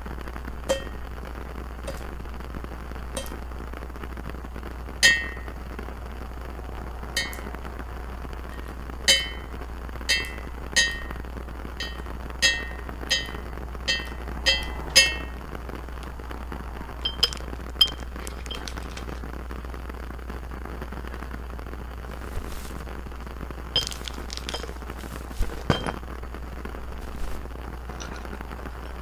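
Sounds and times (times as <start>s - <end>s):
glass bottle tapped clinking: 0.7s - 1.0s, 1.9s - 2.1s, 3.2s - 3.4s, 5.0s - 5.5s, 7.2s - 7.5s, 9.1s - 9.5s, 10.1s - 11.2s, 11.8s - 15.4s, 17.1s - 19.0s, 23.8s - 24.8s, 25.4s - 26.0s.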